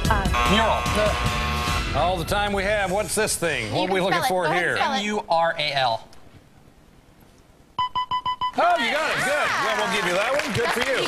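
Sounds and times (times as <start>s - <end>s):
short electronic beeps: 7.8s - 8.6s.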